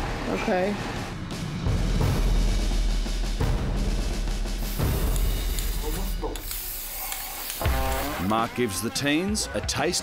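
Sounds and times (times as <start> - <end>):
spray can hissing: 4.6 - 8.4.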